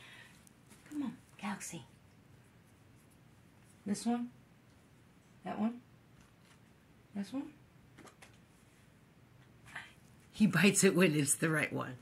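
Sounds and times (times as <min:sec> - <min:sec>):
woman's voice: 0:00.9 - 0:01.9, 0:03.8 - 0:04.4, 0:05.4 - 0:05.9, 0:07.1 - 0:07.6, 0:10.3 - 0:12.0.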